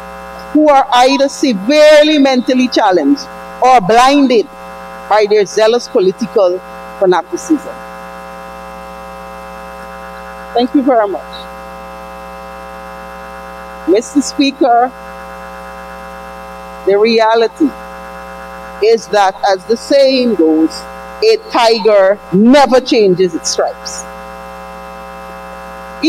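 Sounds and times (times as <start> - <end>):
electrical mains hum: 0.0 - 26.0
woman's voice: 0.5 - 7.8, 10.6 - 11.5, 13.8 - 15.0, 16.9 - 17.8, 18.8 - 24.1.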